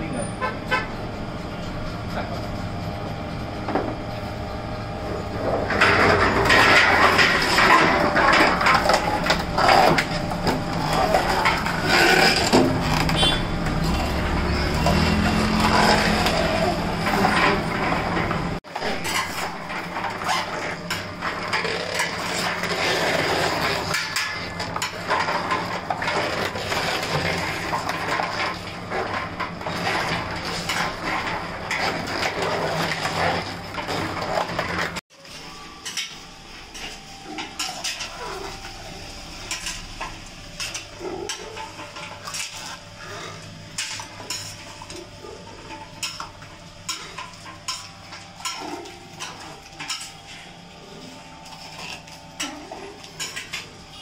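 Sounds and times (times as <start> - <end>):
oil mill machine hum: 0.0 - 54.0
crackling and clinking: 5.6 - 54.0.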